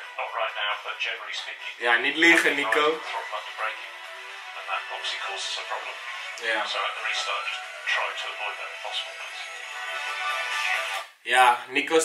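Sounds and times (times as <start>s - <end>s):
background music: 0.0s - 11.7s.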